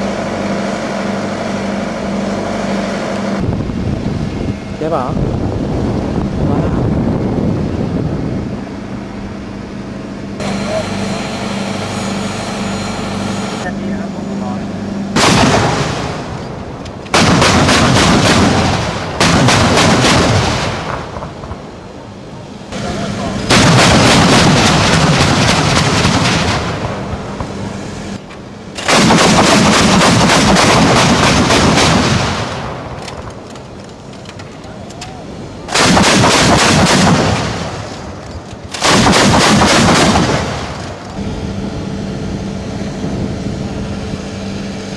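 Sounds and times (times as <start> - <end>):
anti-aircraft guns firing bursts: 15.2 - 16.5, 17.1 - 21.4, 23.4 - 27.6, 28.8 - 33.2, 35.7 - 41.2.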